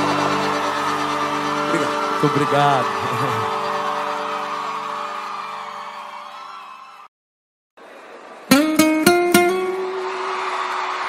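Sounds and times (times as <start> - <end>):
audience cheering and whooping: 0.0 - 7.1, 9.3 - 11.0
live band final chord: 8.5 - 10.3.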